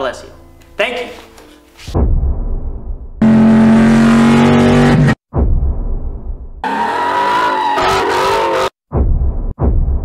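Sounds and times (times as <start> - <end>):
car engine revving: 3.2 - 5.2.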